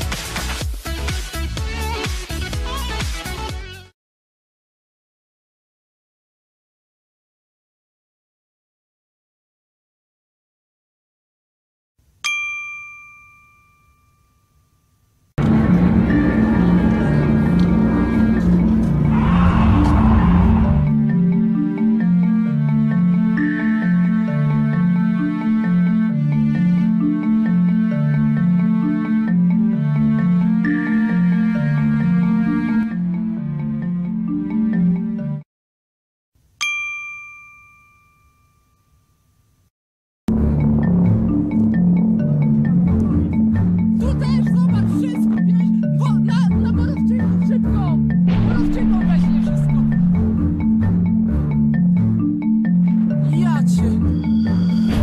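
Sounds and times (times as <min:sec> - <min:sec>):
bright bell-like ding: 0:12.2 - 0:14.9, 0:36.6 - 0:39.3.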